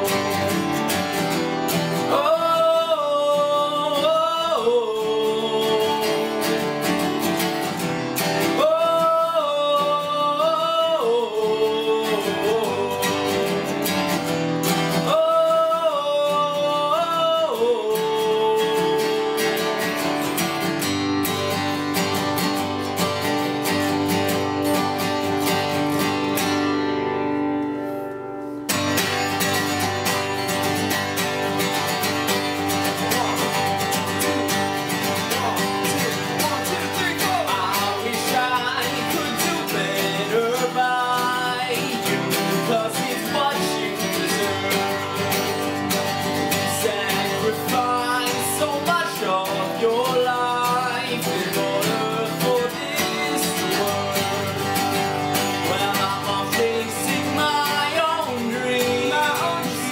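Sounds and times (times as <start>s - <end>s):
person singing: 0.0s - 26.7s, 28.8s - 59.9s
acoustic guitars strummed: 0.0s - 59.9s.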